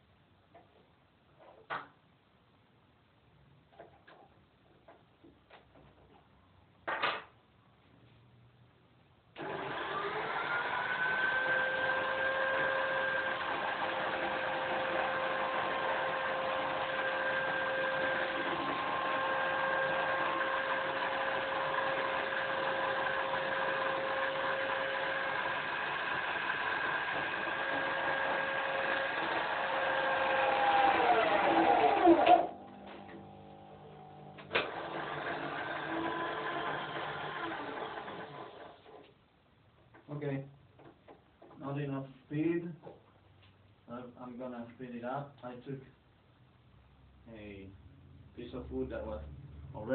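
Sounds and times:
electric drill whining: 9.4s - 39.0s.

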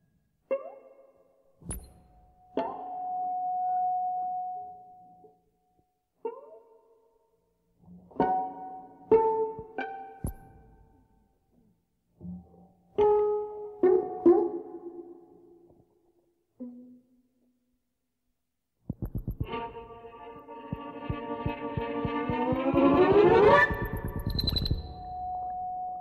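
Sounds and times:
plucked violin notes: 7.9s - 11.0s, 12.2s - 15.3s, 19.3s - 26.0s
pulsing electronic tone: 20.6s - 25.9s.

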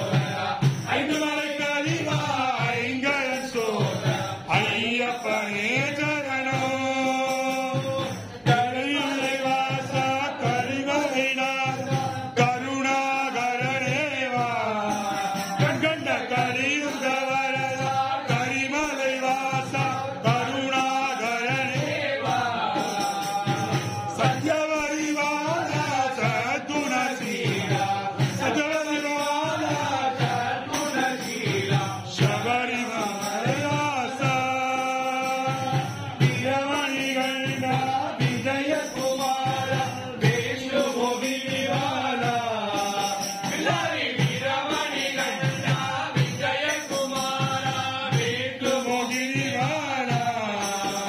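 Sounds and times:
devotional chanting song: 0.0s - 51.0s.

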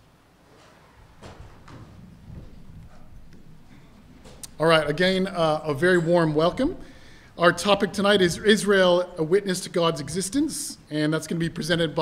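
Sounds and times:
faint low knocks and shuffling: 0.4s - 5.4s.

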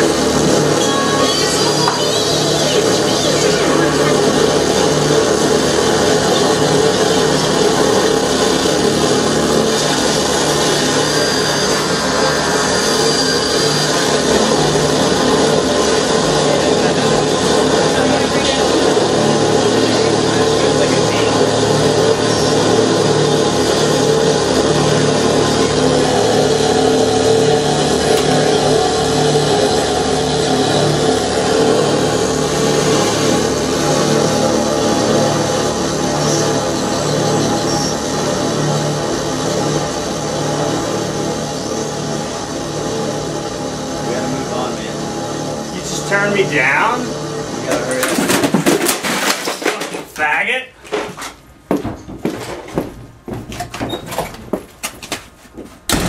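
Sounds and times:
steady droning tones: 0.0s - 48.3s
harsh experimental noise: 0.0s - 51.4s.

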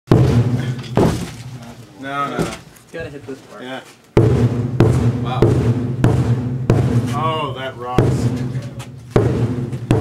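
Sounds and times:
mallet striking metal trash can: 4.2s - 7.4s, 8.0s - 10.0s.

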